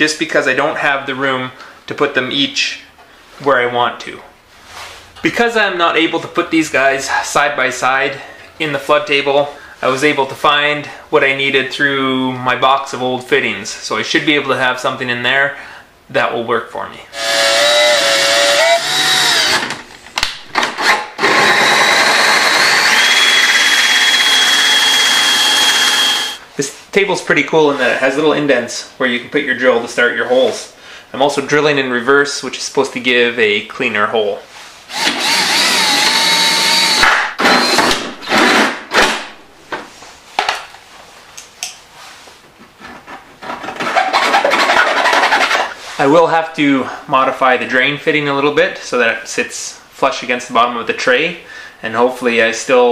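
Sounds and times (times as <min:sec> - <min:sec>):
drill bit whining through plastic: 0:17.2 - 0:19.8, 0:20.7 - 0:26.4, 0:34.9 - 0:38.6
hole saw cutting plastic: 0:17.2 - 0:19.8, 0:20.6 - 0:26.4, 0:34.9 - 0:38.8, 0:43.7 - 0:45.8.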